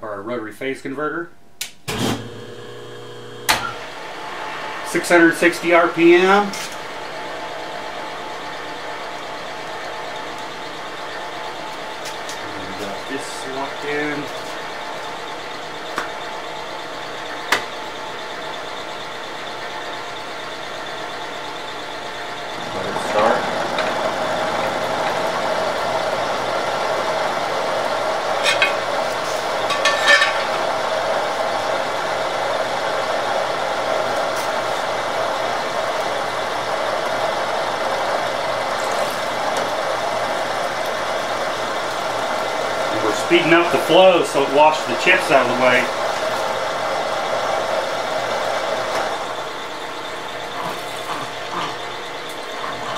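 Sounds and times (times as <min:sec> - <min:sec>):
milling machine humming: 0:01.9 - 0:52.9.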